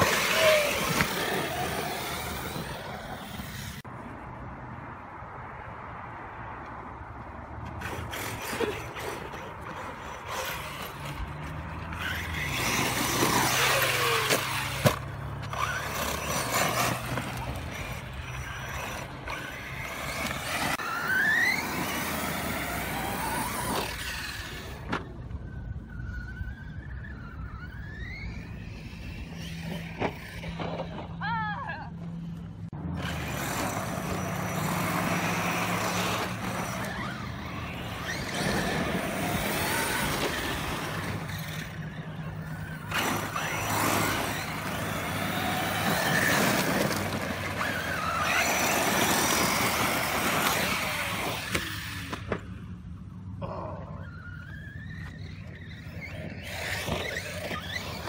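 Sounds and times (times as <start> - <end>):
electric rc car motor whining: 0.0 - 3.9, 7.7 - 31.1, 32.2 - 58.0.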